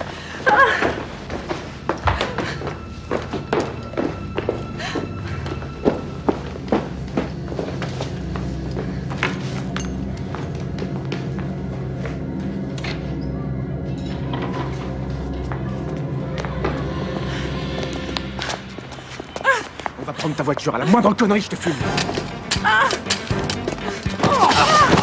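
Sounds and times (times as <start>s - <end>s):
background music: 0.0s - 25.0s.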